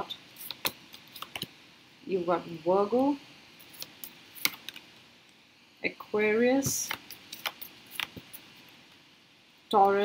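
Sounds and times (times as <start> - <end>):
cards clicking and tapping: 0.4 - 1.5, 6.6 - 8.3.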